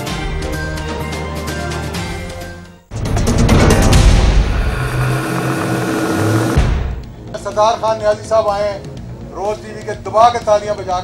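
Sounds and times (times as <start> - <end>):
short hit: 3.3 - 7.2
held low notes: 3.9 - 7.3.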